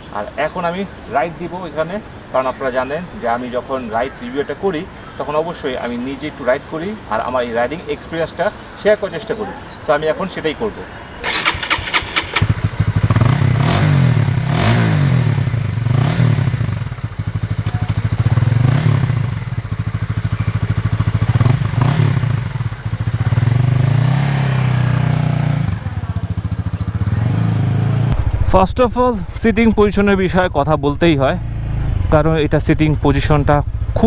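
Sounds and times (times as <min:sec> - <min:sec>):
motorcycle engine idling: 0:11.2 - 0:14.5, 0:15.2 - 0:27.8, 0:32.1 - 0:34.0
motorcycle engine revving: 0:11.2 - 0:28.6, 0:30.9 - 0:34.0.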